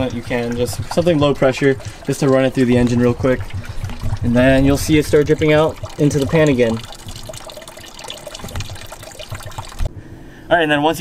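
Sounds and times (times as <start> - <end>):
water trickling into a pan: 0.0 - 9.9.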